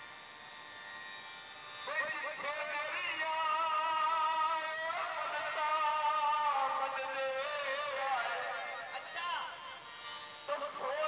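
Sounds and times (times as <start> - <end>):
electrical hum with hiss: 0.0 - 11.0
singing with music: 1.8 - 11.0.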